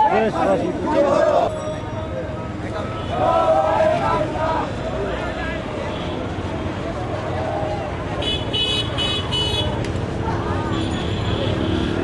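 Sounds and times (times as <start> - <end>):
street crowd voices: 0.0 - 12.0.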